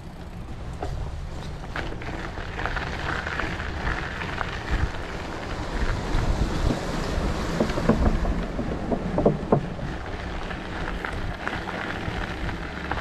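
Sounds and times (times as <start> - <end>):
bike tyres on dirt: 0.0 - 13.0
wind buffeting microphone: 2.2 - 13.0
short knocks and rattles: 6.7 - 10.1.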